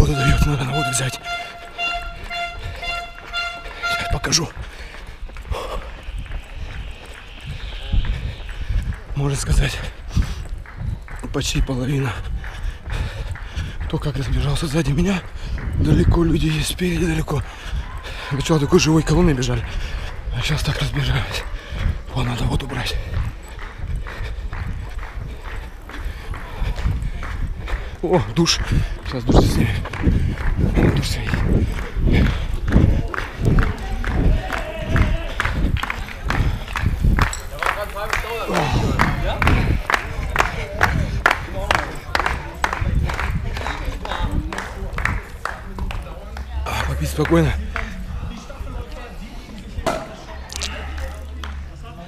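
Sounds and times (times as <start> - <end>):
wind rumble on microphone: 0.0 - 18.2, 18.9 - 46.6
runner breathing: 0.0 - 51.8
footfalls on asphalt: 22.8 - 50.3.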